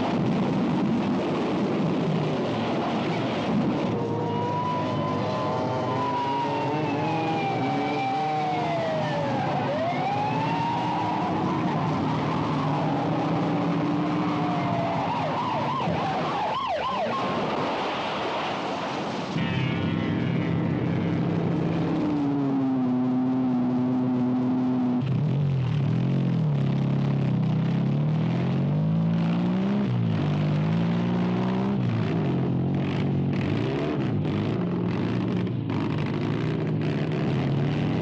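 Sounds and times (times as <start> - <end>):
car engine and tyre noise: 0.0 - 38.0
police siren wailing: 3.8 - 17.5.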